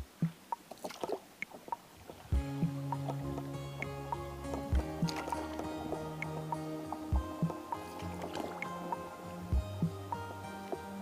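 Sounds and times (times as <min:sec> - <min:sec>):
instrumental background music: 0:02.3 - 0:11.0.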